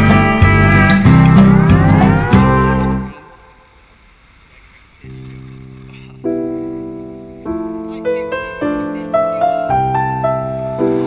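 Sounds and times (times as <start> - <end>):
piano notes and chord: 6.2 - 11.0.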